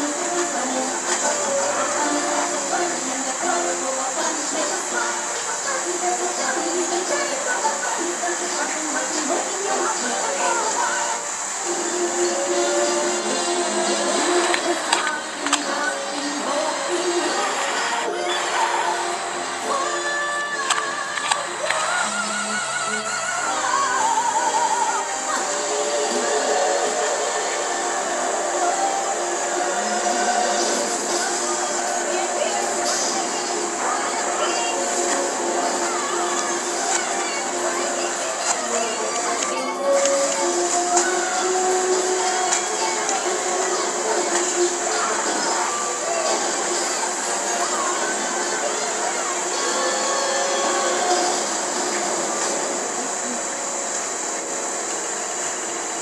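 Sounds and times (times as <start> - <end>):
rushing machine-like noise: 0.0 - 20.0, 20.6 - 56.0
held notes of song music: 0.0 - 56.0
steady tape hiss: 0.0 - 56.0.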